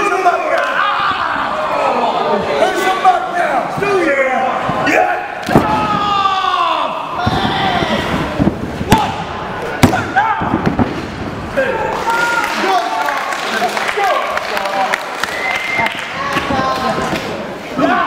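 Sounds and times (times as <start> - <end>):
spectators shouting: 4.3 - 10.6
wrestlers' strikes and body thuds: 5.4 - 6.2.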